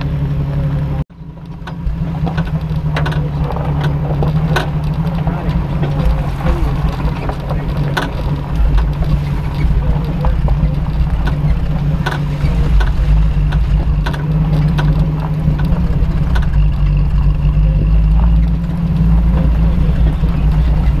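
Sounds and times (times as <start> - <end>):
knocks and rattles: 0.0 - 21.0
truck engine droning: 0.0 - 21.0.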